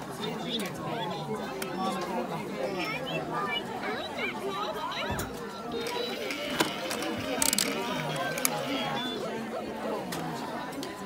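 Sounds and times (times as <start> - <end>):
background chatter: 0.0 - 11.0
plastic toy buttons clicking: 5.7 - 9.2.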